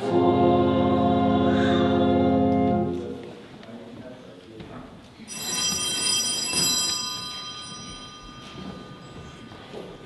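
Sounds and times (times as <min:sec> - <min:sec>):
bell ringing: 0:05.3 - 0:10.0.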